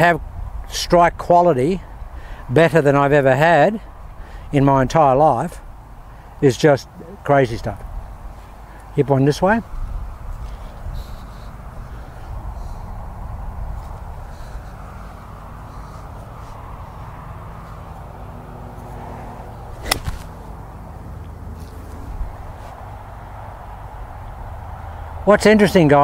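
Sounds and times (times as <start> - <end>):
golf club striking ball: 19.8 - 20.5.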